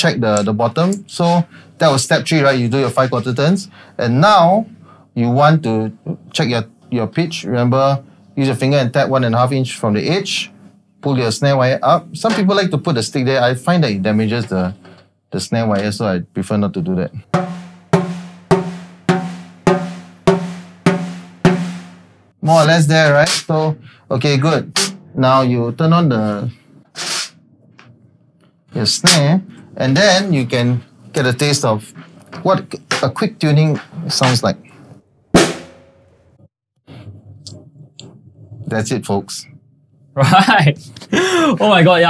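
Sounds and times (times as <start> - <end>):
snare drum ringing out: 17.4 - 22.1, 24.8 - 25.2, 35.4 - 36.0.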